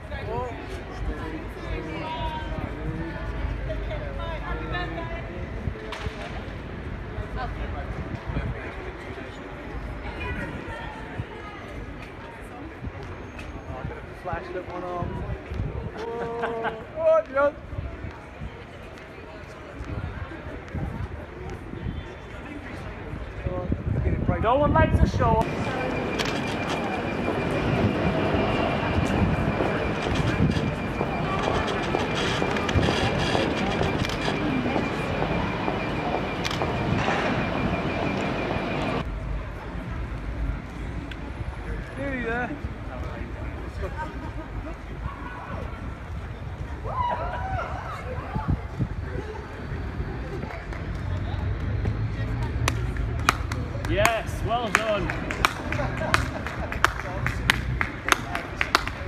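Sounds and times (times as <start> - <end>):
indistinct chatter: 0.0 - 24.2, 25.0 - 59.0
city street rumble: 0.0 - 59.0
traffic noise: 0.0 - 59.0
faint steady high tone: 25.4 - 39.1.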